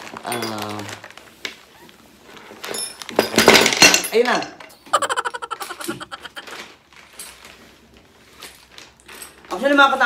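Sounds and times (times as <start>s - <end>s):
plastic bag crinkling: 0.0s - 3.1s, 5.0s - 9.7s.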